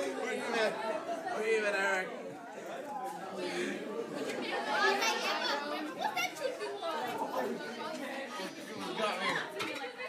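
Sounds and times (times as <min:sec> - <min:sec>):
indistinct chatter of voices: 0:00.0 - 0:10.0.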